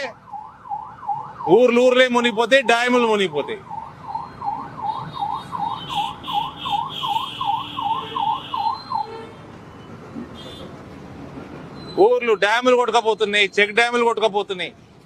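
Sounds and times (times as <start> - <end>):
emergency siren yelping: 0.0 - 9.2
low street background noise: 0.0 - 15.0.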